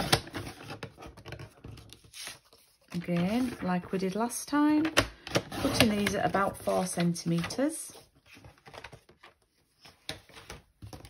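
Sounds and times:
card stock tapping and rustling: 8.3s - 11.0s.

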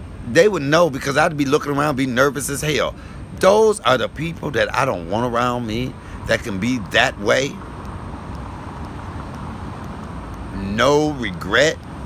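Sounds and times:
cars driving past: 0.0s - 12.0s.

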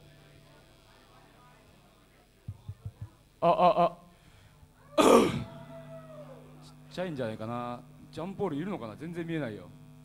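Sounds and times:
low amplifier hum: 0.0s - 10.0s
man clearing throat into microphone: 5.0s - 5.5s.

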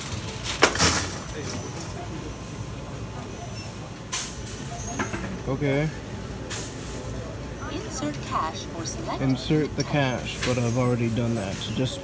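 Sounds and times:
distant voices: 0.1s - 12.0s
steady murmur: 5.4s - 12.0s.

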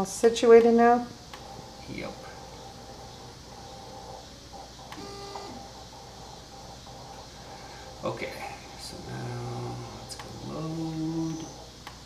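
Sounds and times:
stepper motor whine: 1.6s - 6.7s.

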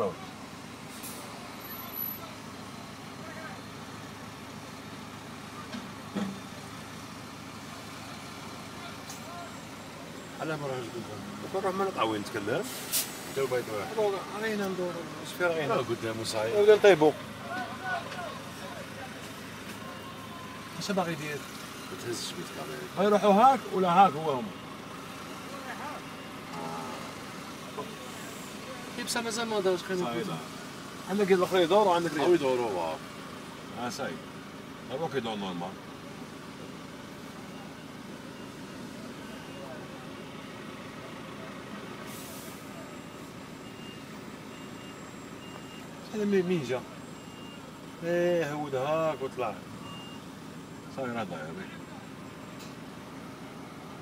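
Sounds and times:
low vehicle hum: 0.0s - 54.0s
short hiss: 12.6s - 13.4s, 42.1s - 42.7s.

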